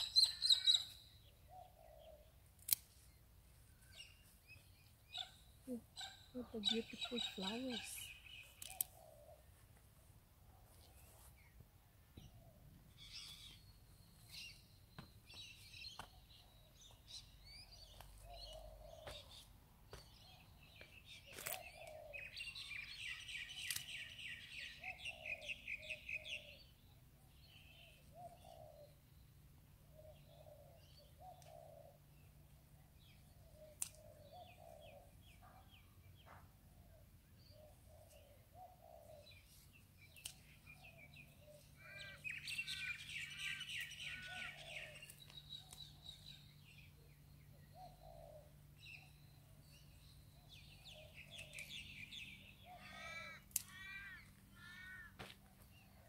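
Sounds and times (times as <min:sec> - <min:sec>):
small birds chirping: 0:00.0 - 0:56.0.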